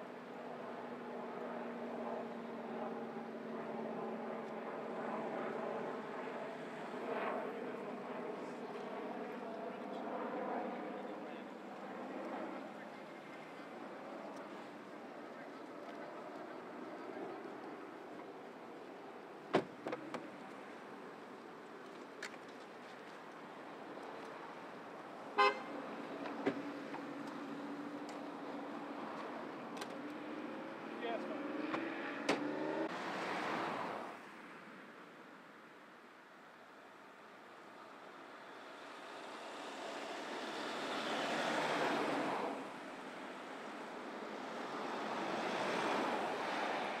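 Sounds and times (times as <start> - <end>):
road traffic passing: 18.0 - 35.0, 37.7 - 47.0
car horn toot: 25.4 - 25.7.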